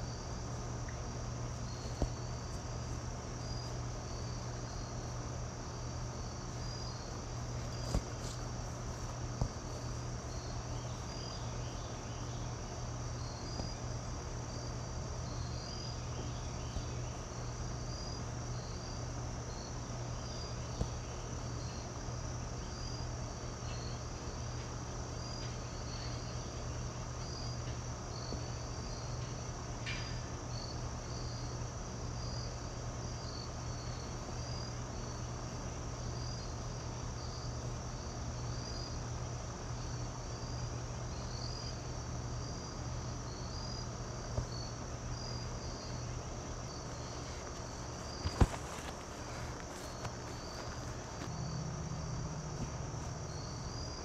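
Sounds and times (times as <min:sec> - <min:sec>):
crickets chirping: 0:00.0 - 0:54.0
low hum: 0:46.2 - 0:54.0.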